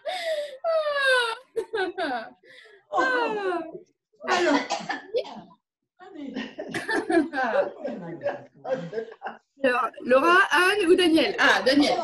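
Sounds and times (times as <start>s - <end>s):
women laughing: 0.7s - 2.4s, 6.7s - 7.9s.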